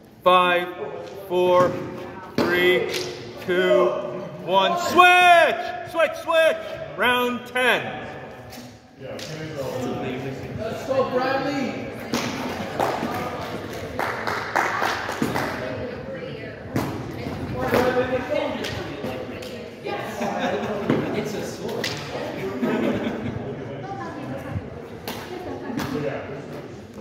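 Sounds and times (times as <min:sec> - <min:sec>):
people talking: 0:15.3 - 0:27.0.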